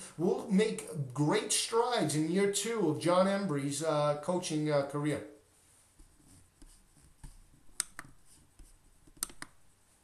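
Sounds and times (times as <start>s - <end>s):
faint sharp clicks: 7.8s - 8.2s.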